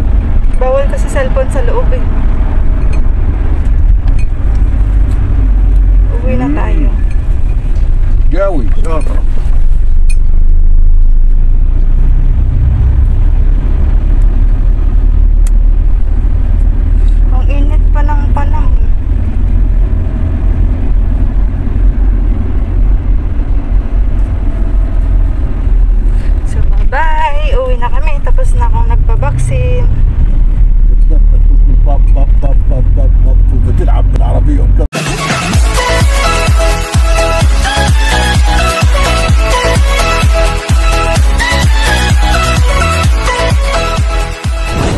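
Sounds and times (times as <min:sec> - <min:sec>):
car cabin rumble: 0:00.0 - 0:43.8
voices: 0:00.6 - 0:02.2, 0:26.5 - 0:30.0.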